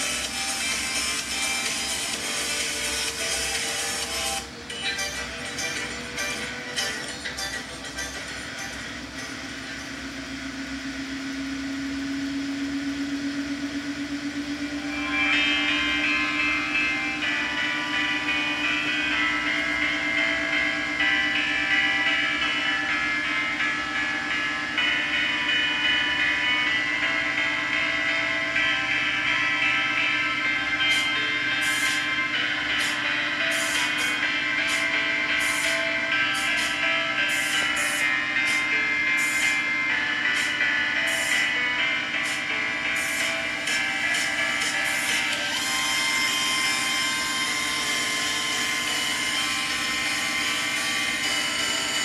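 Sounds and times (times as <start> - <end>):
motor whine rising in pitch: 0.0 - 7.0, 7.7 - 52.0
high whining tones: 0.0 - 52.0.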